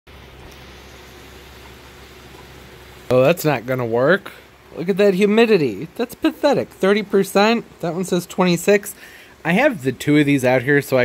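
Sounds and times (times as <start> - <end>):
even hiss: 0.1 - 11.0
steady background hum: 0.1 - 11.0.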